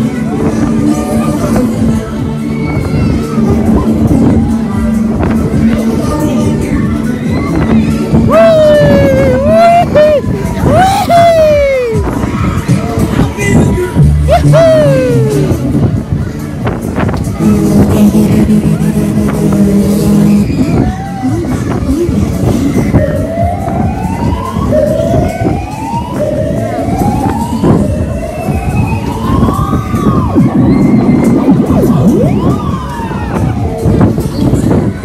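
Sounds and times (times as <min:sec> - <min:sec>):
funfair ride music: 0:00.0 - 0:35.0
funfair ride noise: 0:00.0 - 0:35.0
siren-like rising wails: 0:07.0 - 0:12.1, 0:22.5 - 0:34.3.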